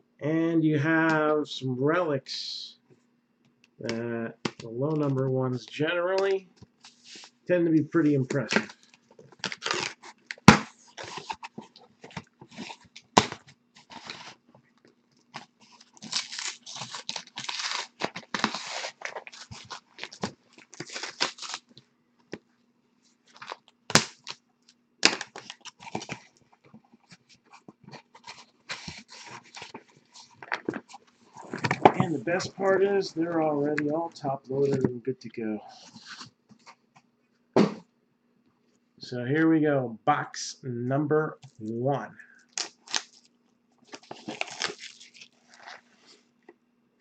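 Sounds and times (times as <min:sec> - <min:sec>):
packaging tearing and crinkling: 0:08.4 - 0:14.4, 0:15.4 - 0:21.8, 0:23.3 - 0:26.4, 0:27.0 - 0:32.8, 0:42.5 - 0:46.2.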